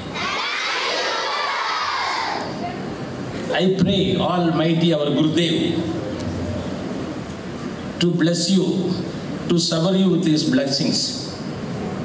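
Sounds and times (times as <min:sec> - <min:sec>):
crowd of children shouting: 0:00.0 - 0:02.6.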